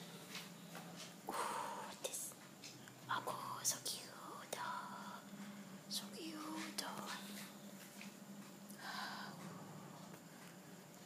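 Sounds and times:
person whispering: 0:01.3 - 0:02.4, 0:03.1 - 0:05.3, 0:05.9 - 0:07.5.

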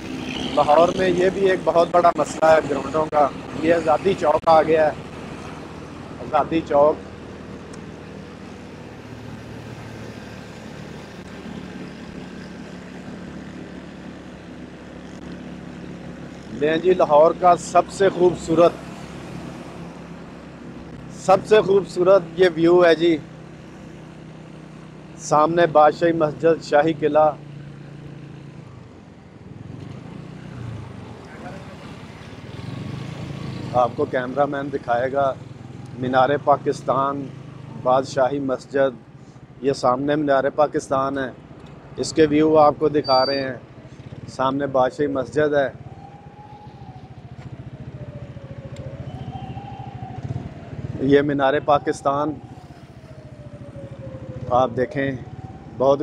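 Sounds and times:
road and wind noise: 0:00.0 - 0:56.0.

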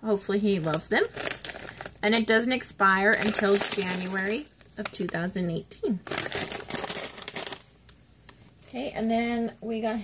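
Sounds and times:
plastic bag crinkling: 0:00.3 - 0:10.0.

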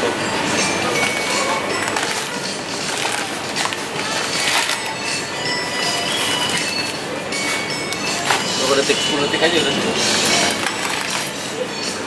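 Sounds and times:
shopping cart wheels rolling: 0:00.1 - 0:12.0.

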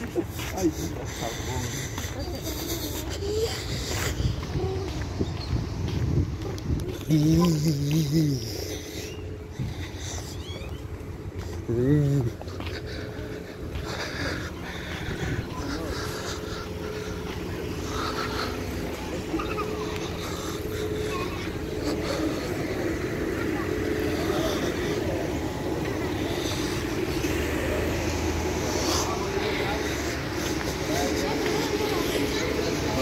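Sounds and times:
indistinct voices: 0:00.0 - 0:33.0
low traffic rumble: 0:00.0 - 0:33.0.

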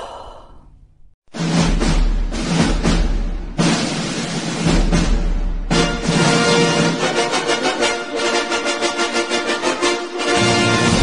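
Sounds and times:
breathy sigh: 0:00.0 - 0:00.8
loud music with heavy drums: 0:01.3 - 0:07.9, 0:10.3 - 0:11.0.

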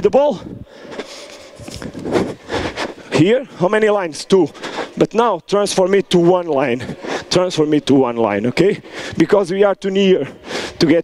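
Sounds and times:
large hall background noise: 0:00.0 - 0:11.0.

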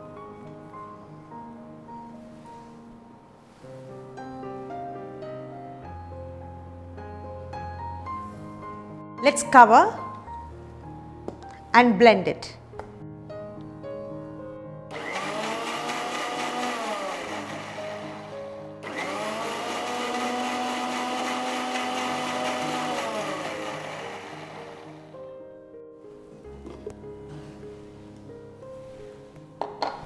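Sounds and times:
mixer grinder running: 0:14.9 - 0:25.2.

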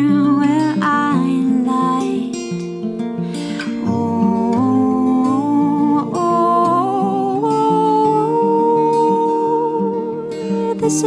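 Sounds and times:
acoustic guitars playing: 0:00.0 - 0:11.0
man and woman singing: 0:03.8 - 0:11.0.

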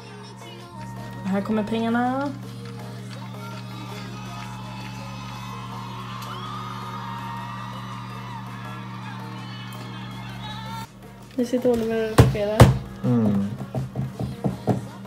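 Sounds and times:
music through television speaker: 0:00.0 - 0:15.0
steady low hum: 0:00.0 - 0:15.0
crowd cheering and whooping: 0:00.6 - 0:10.9.

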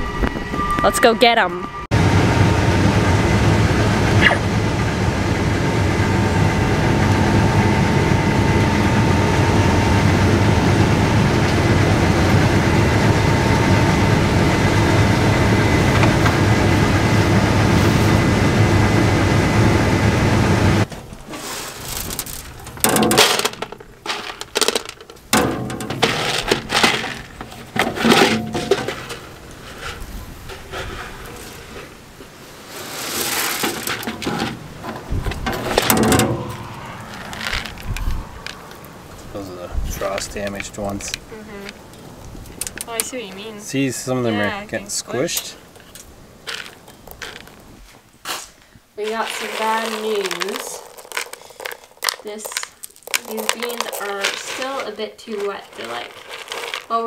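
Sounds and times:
combine harvester droning: 0:00.0 - 0:45.6
knocks and scrapes: 0:20.8 - 0:41.2, 0:45.8 - 0:57.0.

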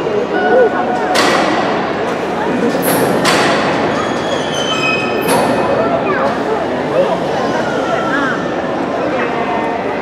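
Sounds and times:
crowd chattering in a large hall: 0:00.0 - 0:10.0.

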